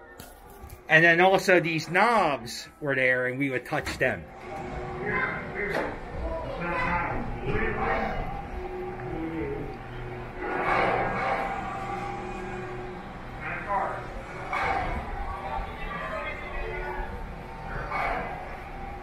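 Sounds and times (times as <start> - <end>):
low steady hum: 3.8 - 19.0.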